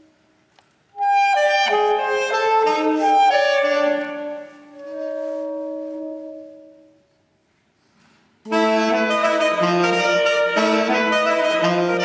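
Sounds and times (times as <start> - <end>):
saxophone duet: 0.9 - 7.1, 8.4 - 12.0.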